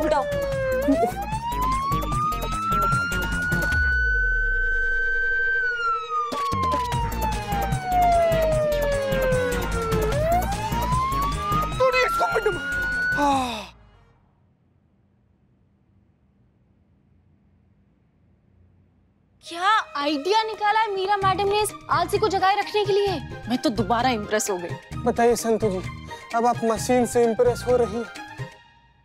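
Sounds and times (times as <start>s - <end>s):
electronic siren wailing: 0.0s - 13.2s.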